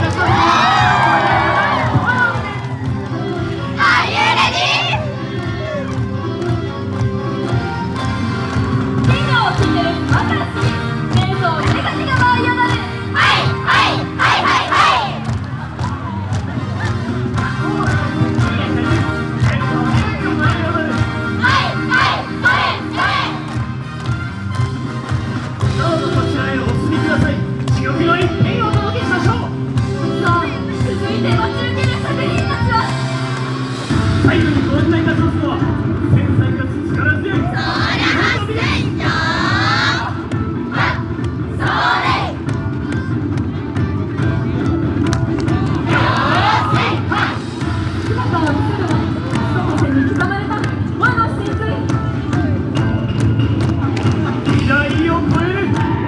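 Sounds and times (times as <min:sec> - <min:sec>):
dance music: 0:00.0 - 0:36.0, 0:37.4 - 0:56.0
group shouting calls: 0:03.8 - 0:05.0, 0:13.2 - 0:15.2, 0:21.4 - 0:23.4
loud dance music: 0:08.3 - 0:15.3, 0:16.5 - 0:23.8, 0:45.8 - 0:50.5.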